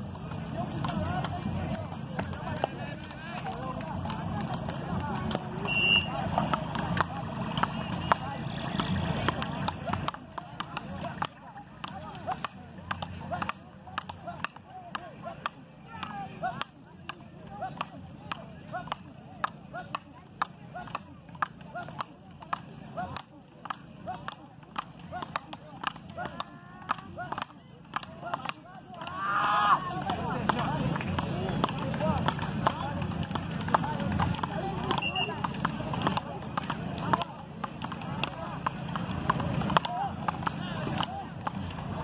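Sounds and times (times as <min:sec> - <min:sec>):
paddles hitting ball: 0:00.0 - 0:42.0
voices chattering: 0:00.0 - 0:42.0.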